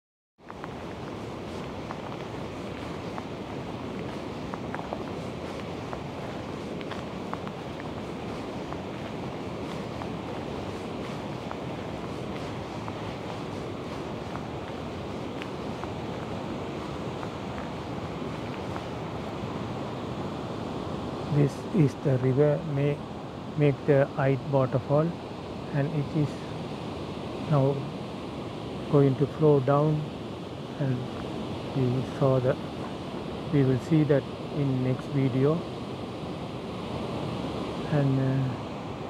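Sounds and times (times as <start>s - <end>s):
river rushing: 0.4s - 39.0s.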